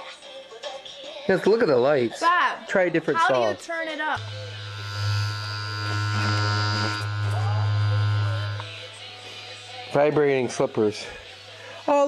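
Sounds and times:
vibration motor buzzing: 4.2s - 9.5s.

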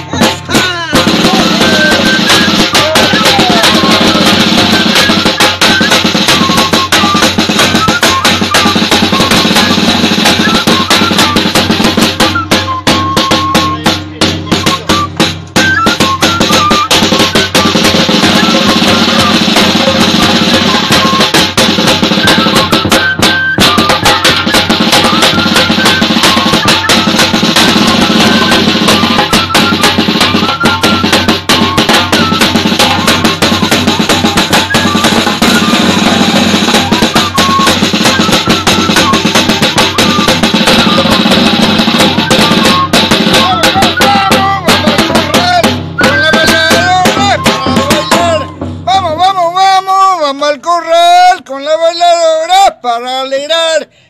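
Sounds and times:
large bass drum: 0.0s - 49.3s
side drum beaten with sticks: 0.0s - 50.1s
metal flute melody: 0.0s - 50.2s.

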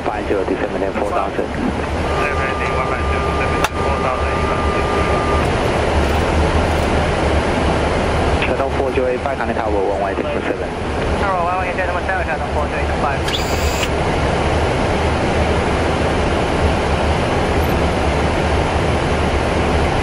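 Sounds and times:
muffled voices: 0.0s - 7.0s, 8.3s - 13.9s
airflow and engine rumble: 0.0s - 20.0s
thin steady tone: 1.9s - 5.8s.

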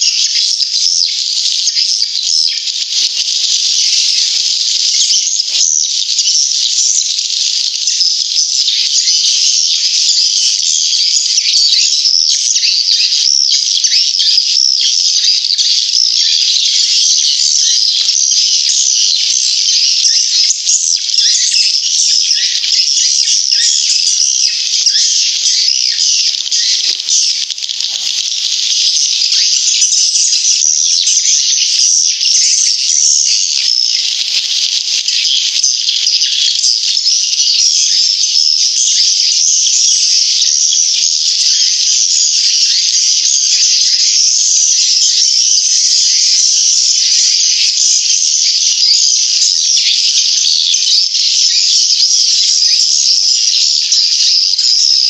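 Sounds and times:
swiftlets twittering and chirping: 0.0s - 55.0s.

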